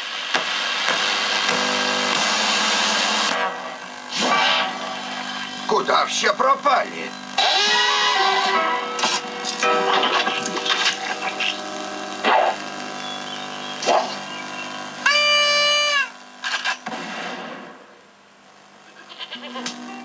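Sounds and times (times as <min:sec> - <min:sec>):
loud high-pitched cry: 0:07.4 - 0:08.6, 0:18.9 - 0:19.6
cartoon music and sound effects: 0:07.4 - 0:08.7.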